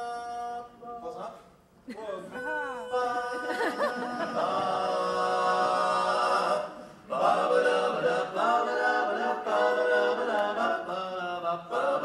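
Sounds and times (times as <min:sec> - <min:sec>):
men singing a cappella chord: 0:00.0 - 0:00.8, 0:02.3 - 0:12.0.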